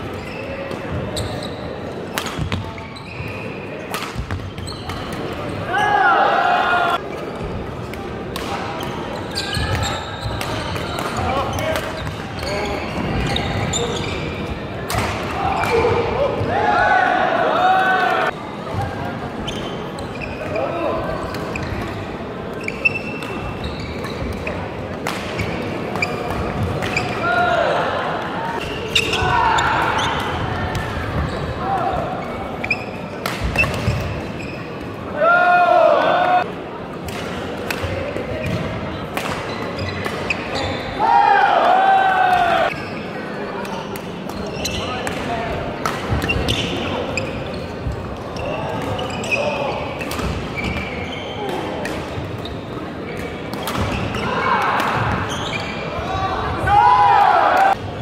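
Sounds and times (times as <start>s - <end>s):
shoes squeaking on court: 0.0s - 6.0s, 8.8s - 14.7s, 18.2s - 27.3s, 28.6s - 35.0s, 39.4s - 41.0s, 42.6s - 45.2s, 46.0s - 56.1s
racket hitting shuttlecock: 2.1s - 2.6s, 3.9s - 5.3s, 33.2s - 34.1s.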